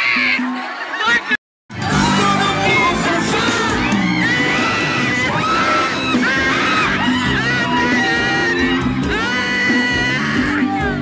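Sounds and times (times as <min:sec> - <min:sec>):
crowd shouting: 0:00.0 - 0:11.0
live band music with bass: 0:01.7 - 0:11.0.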